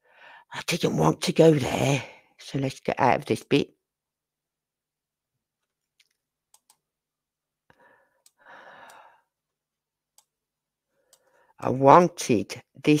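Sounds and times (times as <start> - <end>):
quiet breath: 0.0 - 0.5, 7.7 - 9.4, 10.9 - 11.6
computer mouse clicks: 5.6 - 6.8.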